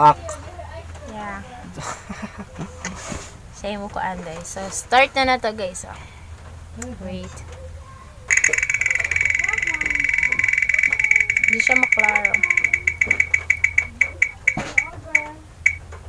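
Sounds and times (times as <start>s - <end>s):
spinning wheel app ticking: 8.3s - 16.0s.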